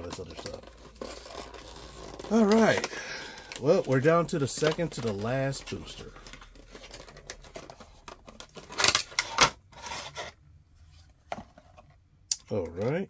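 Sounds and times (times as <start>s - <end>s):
packaging tearing: 0.0s - 9.4s
packaging crinkling and rustling: 0.0s - 10.3s.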